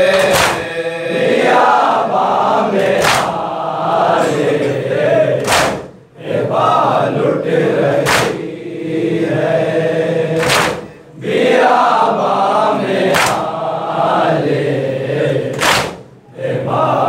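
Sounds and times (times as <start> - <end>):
men chanting in unison: 0.0 - 17.0.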